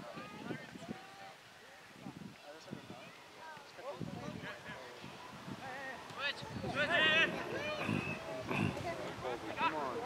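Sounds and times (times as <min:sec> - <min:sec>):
high calls: 0:06.8 - 0:08.9.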